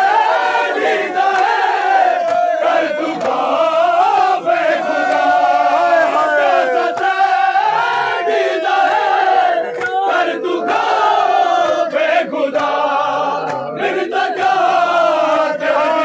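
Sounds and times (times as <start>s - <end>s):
men chanting a lament: 0.0s - 16.0s
hands slapping bare chests: 1.3s - 3.6s, 4.8s - 6.2s, 6.8s - 7.4s, 9.7s - 13.8s.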